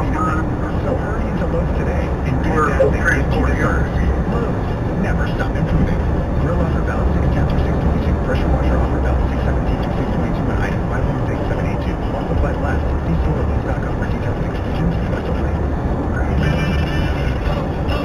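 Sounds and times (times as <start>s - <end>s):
car road and engine noise: 0.0s - 18.0s
indistinct radio talk: 0.0s - 18.0s.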